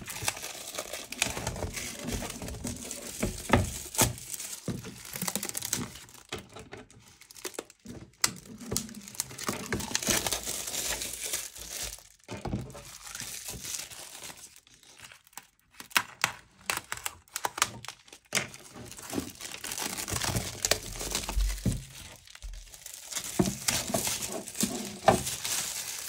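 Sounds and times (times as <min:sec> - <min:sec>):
plastic wrapping crinkling: 0:00.0 - 0:26.0.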